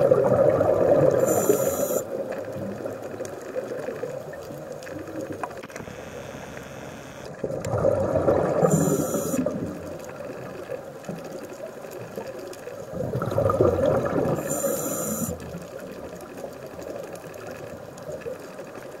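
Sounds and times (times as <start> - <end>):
regulator exhale bubbling: 0.0 - 2.2, 7.5 - 9.8, 12.9 - 15.5
underwater water noise: 0.0 - 19.0
regulator hiss: 1.2 - 2.1, 8.6 - 9.6, 14.4 - 15.4.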